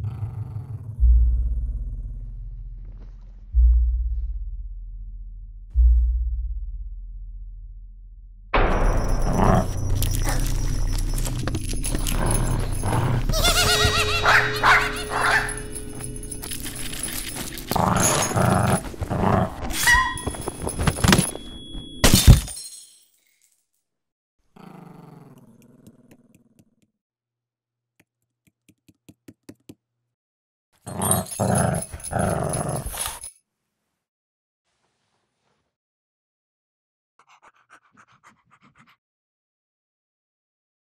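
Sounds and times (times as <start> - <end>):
dog barking and growling: 8.6 - 21.4, 24.6 - 26.6, 30.8 - 33.3
cartoon music: 13.2 - 16.0.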